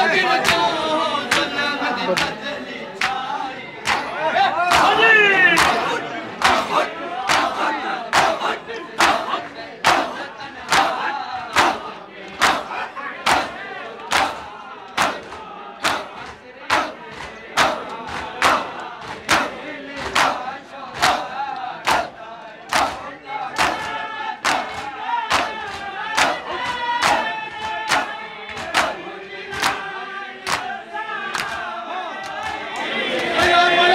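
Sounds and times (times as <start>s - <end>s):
crowd voices: 0.0s - 33.9s
men slapping chests in unison: 0.2s - 33.6s.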